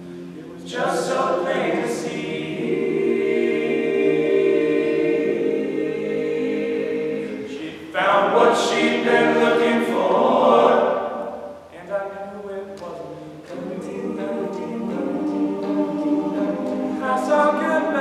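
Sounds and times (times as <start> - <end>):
male group singing in harmony: 0.0 - 18.0.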